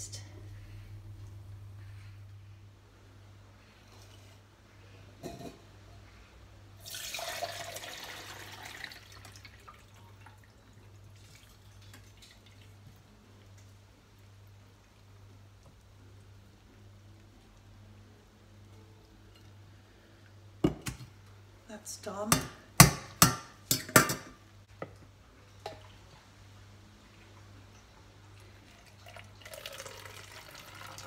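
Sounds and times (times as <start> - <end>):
water pouring through a metal sieve: 6.8 - 9.9, 28.5 - 31.0.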